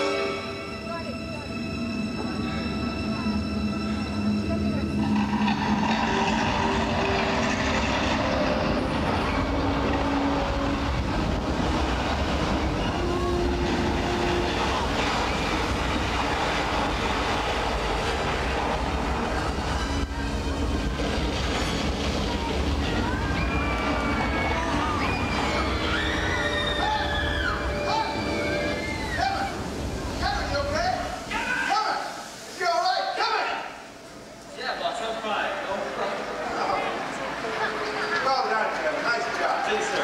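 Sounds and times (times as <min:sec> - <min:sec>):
music cue: 0:00.0 - 0:11.1
deep continuous rumbling: 0:00.8 - 0:31.3
noisy crashing hiss: 0:01.6 - 0:40.0.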